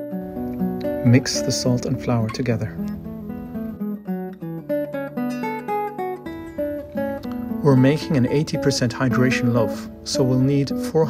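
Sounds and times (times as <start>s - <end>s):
acoustic guitar picking melody: 0.0s - 11.0s.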